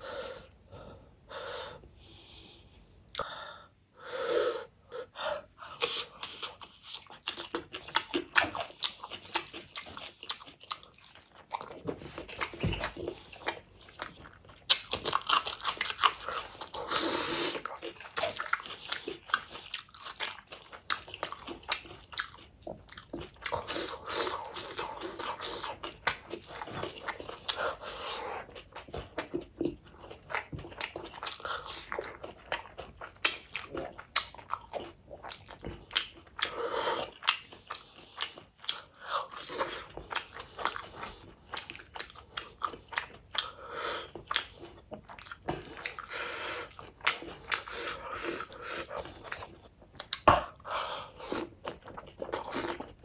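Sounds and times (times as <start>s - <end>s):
person chewing: 5.6s - 53.0s.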